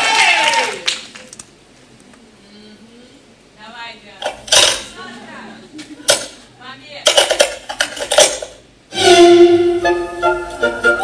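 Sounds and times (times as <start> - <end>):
dishes and cutlery clattering: 7.1 - 8.6.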